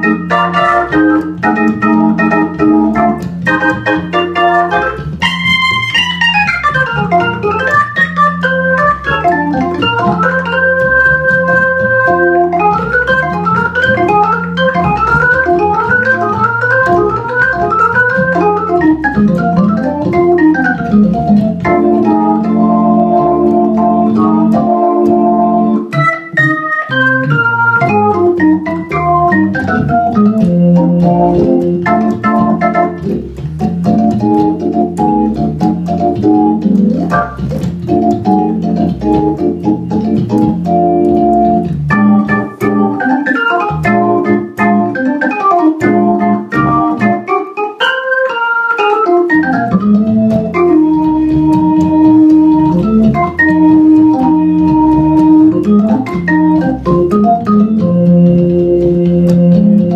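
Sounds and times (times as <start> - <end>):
jazz organ playing: 0.0 - 59.9.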